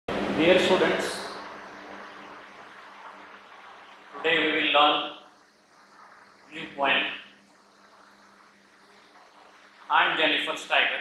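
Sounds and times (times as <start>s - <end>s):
faint low hum: 0.1s - 11.0s
steady low hiss: 0.1s - 11.0s.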